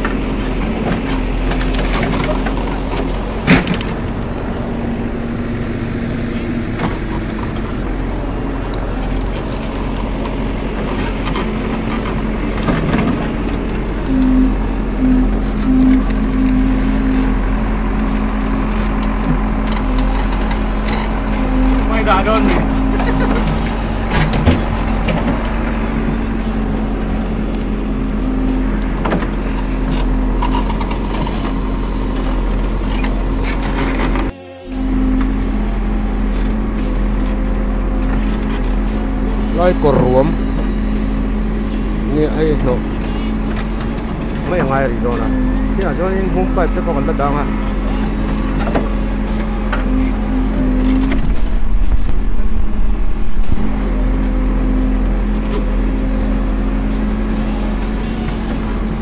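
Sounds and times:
diesel engine running: 0.0 - 59.0.

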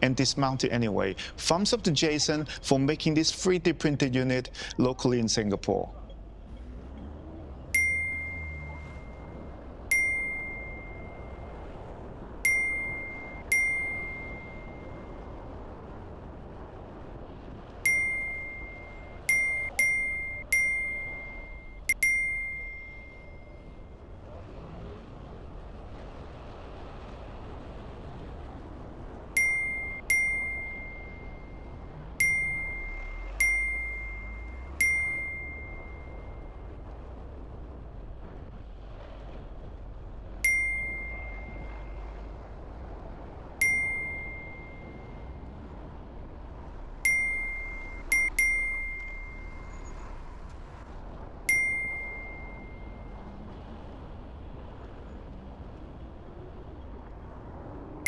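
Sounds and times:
street traffic noise: 0.0 - 58.0
bright ding sound effect: 7.8 - 9.2, 9.9 - 11.2, 12.5 - 14.8, 17.9 - 23.5, 29.4 - 31.6, 32.2 - 36.4, 40.4 - 41.9, 43.6 - 45.0, 51.5 - 53.0.

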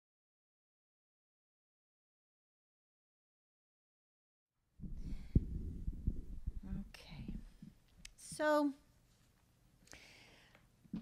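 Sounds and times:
sharp knock on microphone: 4.8 - 7.8
microphone handling thumps: 4.8 - 8.5.

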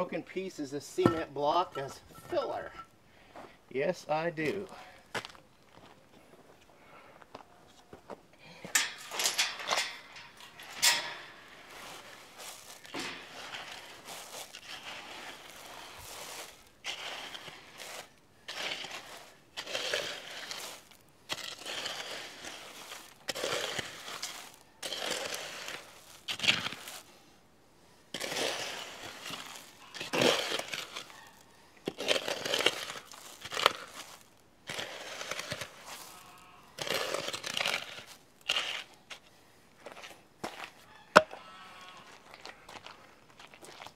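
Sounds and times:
cement blocks knocking: 1.0 - 2.8
trowel scraping concrete: 8.8 - 27.1, 28.1 - 41.4.

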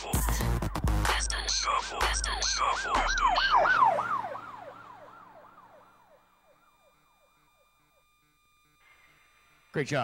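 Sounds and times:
siren wailing over speakers: 1.1 - 8.8.

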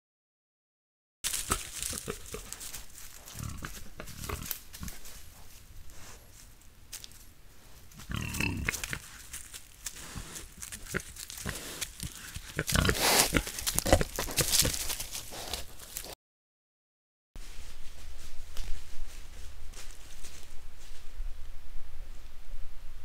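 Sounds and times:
rustling in dry leaves: 1.2 - 16.2, 17.4 - 22.3
wild boars grunting: 1.3 - 5.1, 7.9 - 9.3, 10.0 - 15.8.

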